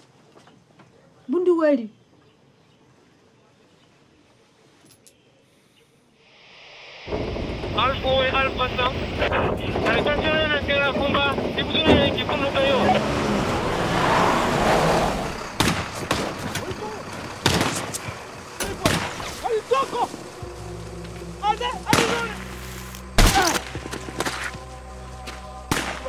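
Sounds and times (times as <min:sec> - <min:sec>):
truck driving: 0:07.1 - 0:26.0
sharp cracks: 0:15.3 - 0:20.3, 0:21.9 - 0:24.6, 0:25.7 - 0:26.0
radio static hiss: 0:15.9 - 0:24.8.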